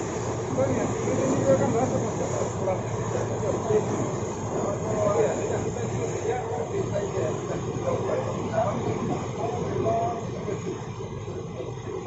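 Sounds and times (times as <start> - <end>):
water churning in wake: 0.0 - 12.0.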